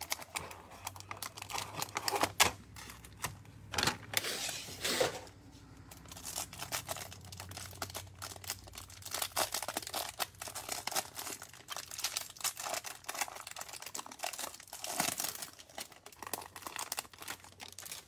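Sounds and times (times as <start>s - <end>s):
plastic wrapper crinkling and tearing: 0.0s - 5.0s, 5.8s - 18.0s.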